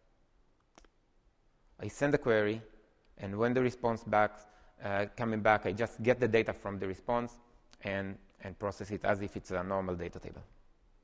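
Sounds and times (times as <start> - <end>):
man's voice: 1.8 - 10.5.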